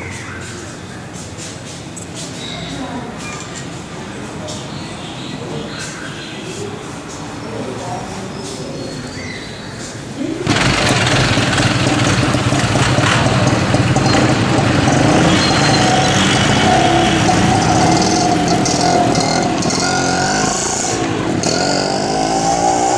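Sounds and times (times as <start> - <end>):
passing cars and vans: 0.0 - 22.9
engine revving up: 10.5 - 22.9
motorcycle engine running: 10.5 - 22.9.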